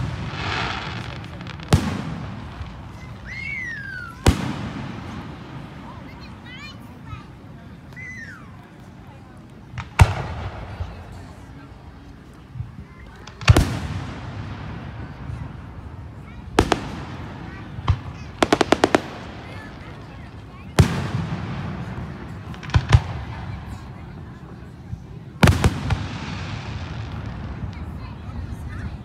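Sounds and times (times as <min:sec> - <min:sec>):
fireworks bangs and cracks: 0:00.0 - 0:29.0.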